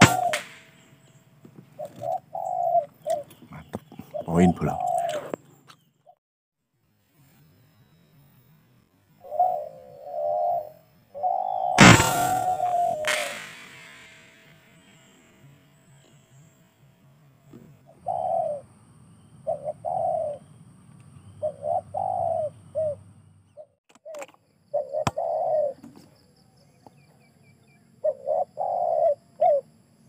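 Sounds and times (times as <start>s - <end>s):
dove cooing: 0.0s - 0.6s, 1.7s - 5.4s, 9.2s - 13.2s, 17.9s - 18.8s, 19.4s - 20.5s, 21.3s - 25.9s, 28.0s - 29.7s
sharp click: 0.0s - 0.8s, 11.8s - 14.6s
faint high chirping: 7.2s - 16.6s.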